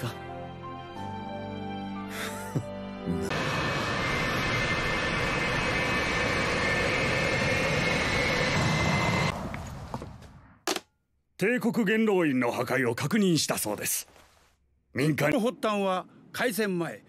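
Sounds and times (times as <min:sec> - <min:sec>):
jet engine rush and whine: 0:03.3 - 0:10.4.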